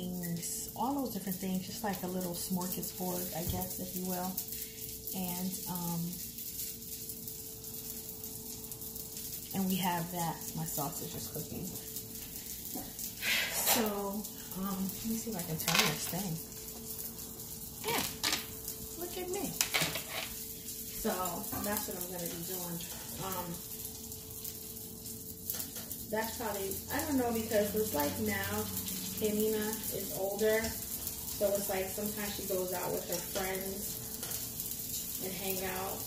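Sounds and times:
faint steady hum: 0:00.0 - 0:36.0
sausage sizzling in a pan: 0:00.0 - 0:36.0.

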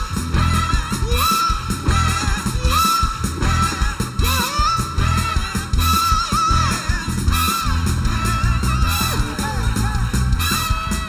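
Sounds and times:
horn section: 0:00.0 - 0:11.0
live soul band: 0:00.0 - 0:11.0.

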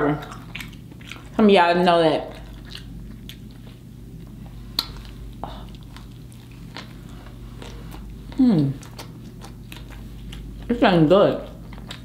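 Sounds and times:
close-miked chewing: 0:00.0 - 0:12.0
steady low hum: 0:00.0 - 0:12.0.

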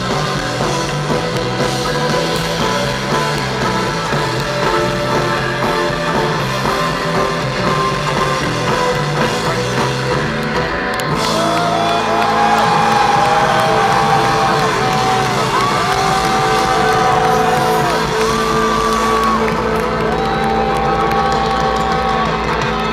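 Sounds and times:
live rock band with guitar and violin: 0:00.0 - 0:22.9.

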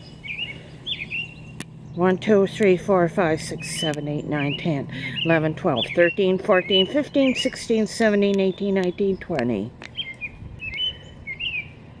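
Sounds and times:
small bird chirping: 0:00.0 - 0:02.7, 0:03.4 - 0:11.8.

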